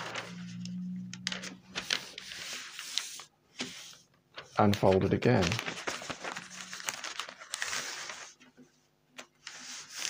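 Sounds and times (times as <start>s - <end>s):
paper crackling: 0.0s - 8.4s, 9.2s - 10.0s
paper rustling and sliding: 0.0s - 8.6s, 9.2s - 10.0s.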